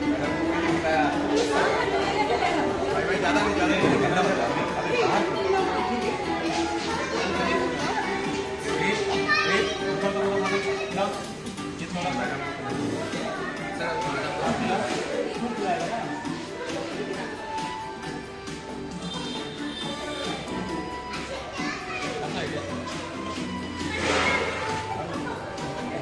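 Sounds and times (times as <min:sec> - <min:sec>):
adults and child talking: 0:00.0 - 0:26.0
background music: 0:00.0 - 0:26.0
child's voice: 0:06.4 - 0:11.0, 0:21.1 - 0:22.3.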